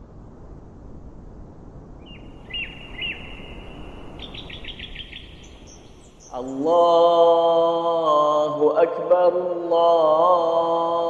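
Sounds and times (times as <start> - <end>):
outdoor background hiss: 0.0 - 11.0
birds chirping: 2.0 - 7.0.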